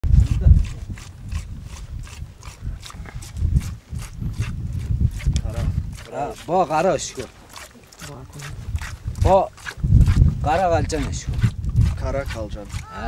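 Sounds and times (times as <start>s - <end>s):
milk squirting into bucket: 0.3s - 13.0s.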